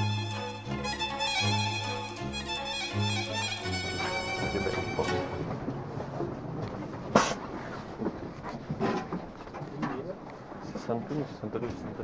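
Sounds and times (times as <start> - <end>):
fiddle music: 0.0 - 6.8
people moving down train aisle: 0.0 - 12.0
soft bumps: 3.7 - 12.0.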